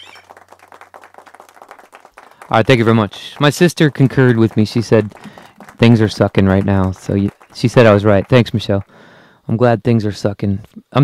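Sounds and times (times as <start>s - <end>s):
quick crackling patter: 0.0s - 8.9s.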